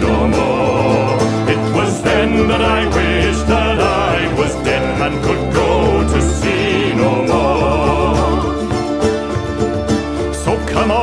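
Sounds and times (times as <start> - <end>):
wavering melody line: 0.0 - 10.6
folk band playing: 0.0 - 11.0.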